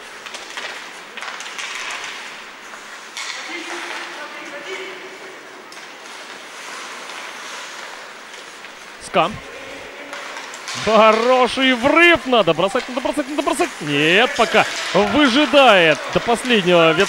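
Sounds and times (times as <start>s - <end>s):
sticks and puck clattering: 0.0s - 4.2s, 10.0s - 17.0s
skates scraping ice: 5.8s - 8.9s, 10.0s - 17.0s
faint voices: 9.0s - 17.0s.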